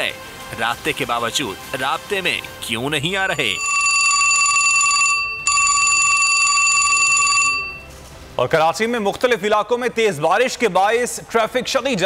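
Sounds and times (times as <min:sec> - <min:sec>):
old telephone bell ringing: 0:03.5 - 0:07.9.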